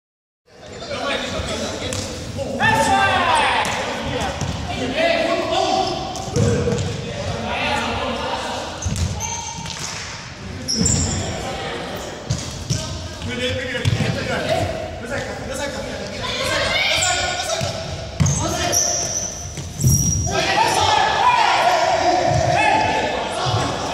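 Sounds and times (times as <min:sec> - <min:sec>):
players calling and shouting: 0:00.6 - 0:23.9.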